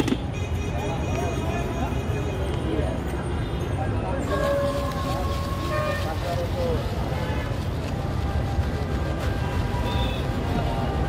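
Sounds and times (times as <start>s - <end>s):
traffic rumble: 0.0s - 11.0s
people's voices: 0.7s - 11.0s.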